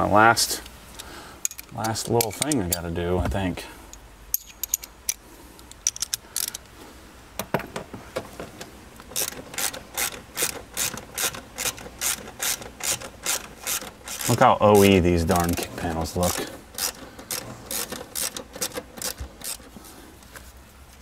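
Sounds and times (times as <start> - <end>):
hand ratchet clicking: 4.3 - 6.7, 9.0 - 19.8.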